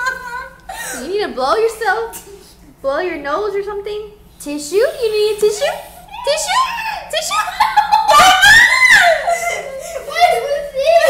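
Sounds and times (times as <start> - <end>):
laughter: 0.0 - 0.9, 7.2 - 11.0.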